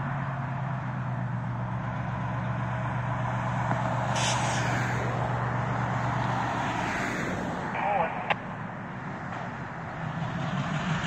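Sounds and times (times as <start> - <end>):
diesel locomotive humming: 0.0 - 6.5, 7.5 - 11.0
cars passing on road: 0.0 - 11.0
brief hiss: 4.1 - 4.7.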